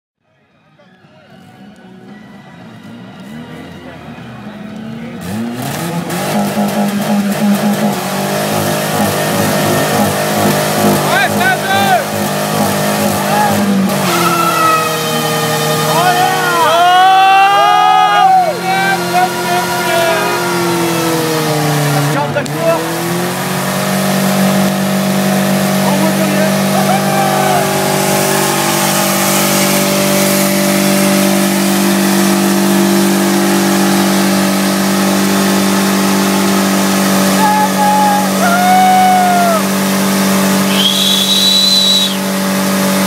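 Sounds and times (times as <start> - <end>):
tires spinning and squealing: 2.7 - 43.0
car engine at high revs: 2.9 - 43.0.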